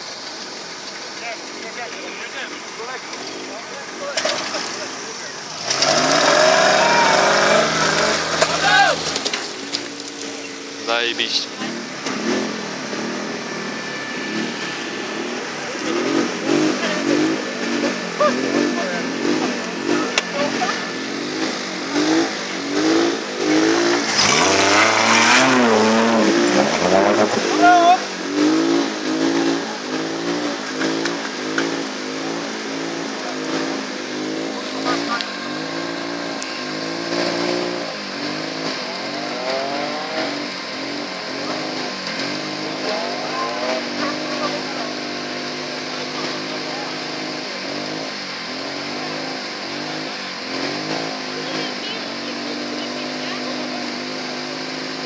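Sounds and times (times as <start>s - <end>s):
buggy engine revving: 0.0s - 55.0s
rush of spray: 0.0s - 55.0s
wheels churning mud and water: 0.0s - 55.0s.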